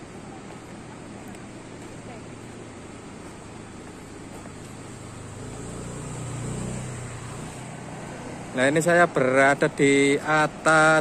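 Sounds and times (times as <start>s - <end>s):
motorcycle passing: 2.0s - 10.9s.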